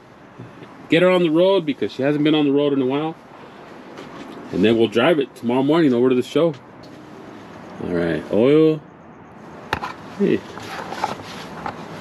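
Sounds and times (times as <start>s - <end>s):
metal dipstick scraping and rubbing: 9.7s - 12.0s.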